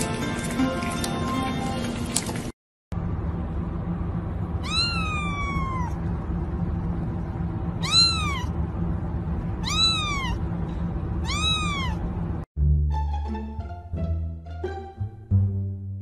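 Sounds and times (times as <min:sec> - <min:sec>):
kitten meowing: 0:04.6 - 0:06.0, 0:07.8 - 0:08.5, 0:09.6 - 0:10.4, 0:11.2 - 0:12.0.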